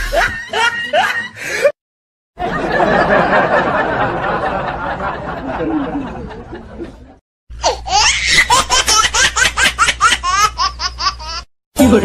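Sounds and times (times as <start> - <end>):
high-pitched laughter: 0.0 - 1.4.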